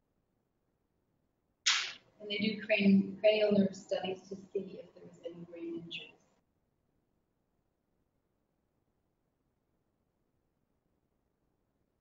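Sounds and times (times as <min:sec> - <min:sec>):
sudden loud short hiss: 0:01.7 - 0:02.0.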